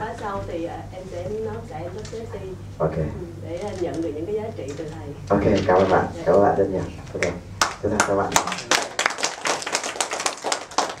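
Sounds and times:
people applauding: 0:07.2 - 0:11.0.

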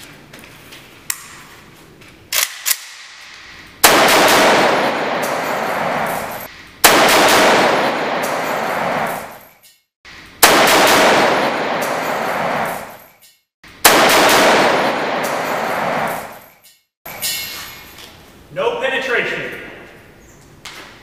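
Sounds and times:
rifle fire: 0:03.8 - 0:09.4, 0:10.4 - 0:13.0, 0:13.8 - 0:16.4.

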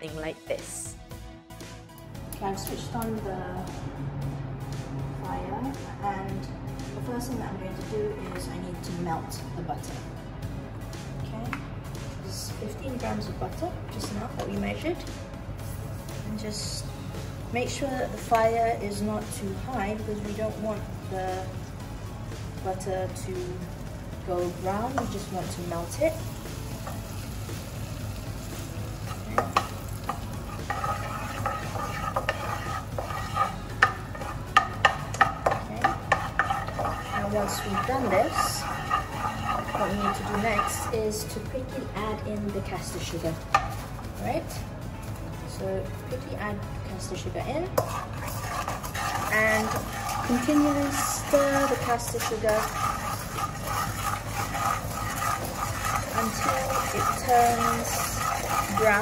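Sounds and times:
butter sizzling in a wok: 0:22.4 - 0:41.3, 0:47.8 - 0:59.0
spatula knocking and scraping pan: 0:24.6 - 0:25.7, 0:29.1 - 0:41.3, 0:47.8 - 0:59.0.

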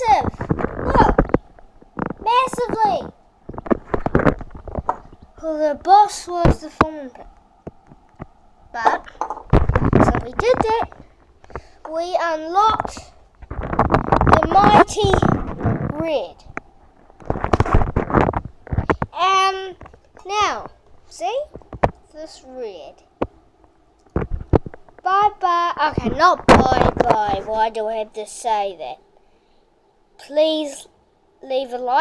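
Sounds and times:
camera handling knocks and rubbing: 0:03.5 - 0:05.3, 0:07.6 - 0:11.6, 0:12.7 - 0:15.8, 0:16.5 - 0:19.1, 0:21.5 - 0:22.0, 0:24.1 - 0:25.0
loud knocks and clatters: 0:08.8 - 0:11.7, 0:12.7 - 0:16.6.

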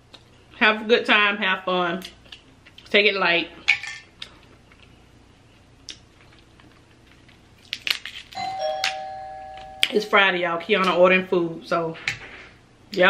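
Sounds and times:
two-tone doorbell chime: 0:08.4 - 0:10.2.

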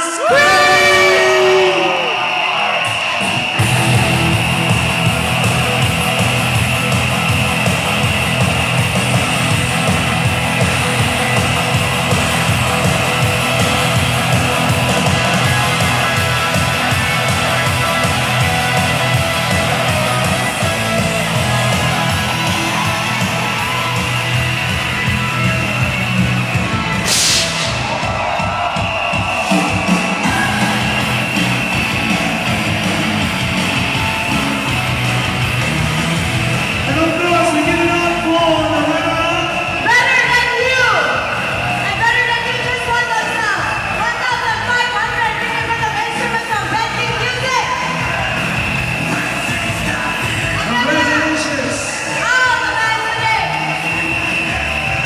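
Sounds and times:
rock music with electric guitar: 0:00.0 - 0:55.0
burst of hiss: 0:27.0 - 0:27.8.

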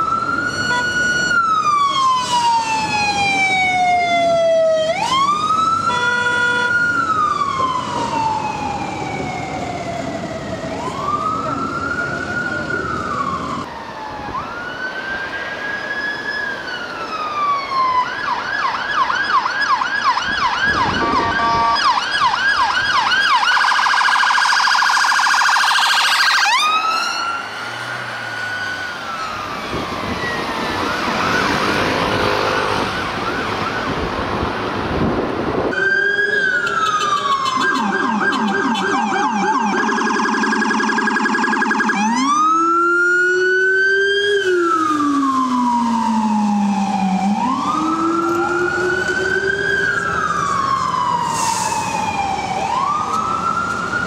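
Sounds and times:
police siren wailing and yelping: 0:00.0 - 0:34.4, 0:35.7 - 0:54.0
ambulance siren: 0:00.0 - 0:54.0
traffic noise: 0:00.0 - 0:54.0.

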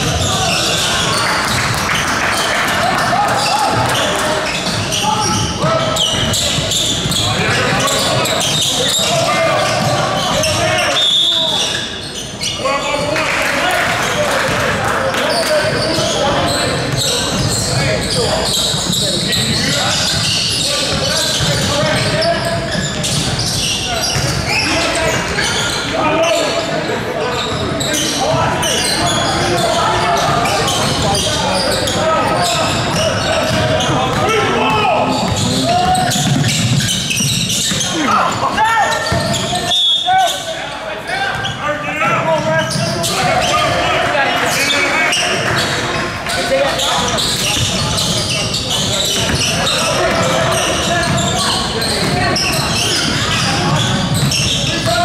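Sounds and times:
shouts and chatter: 0:00.0 - 0:55.0.

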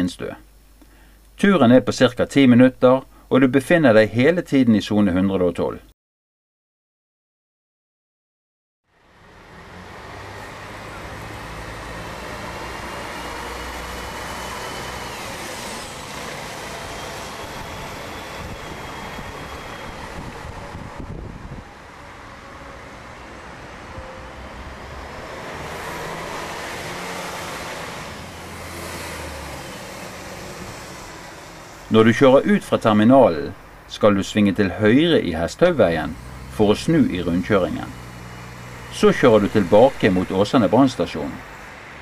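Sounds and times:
diesel bus engines running: 0:08.9 - 0:42.0
road traffic: 0:08.9 - 0:42.0.

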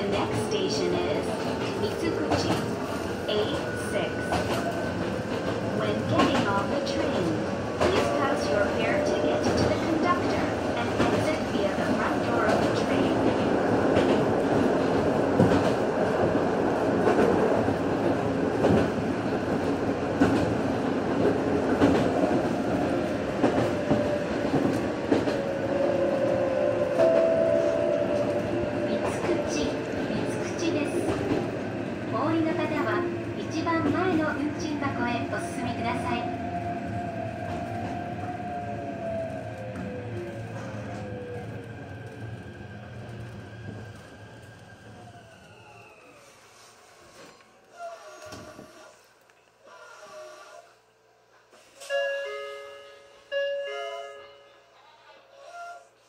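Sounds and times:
electric train whine: 0:21.1 - 0:32.9.

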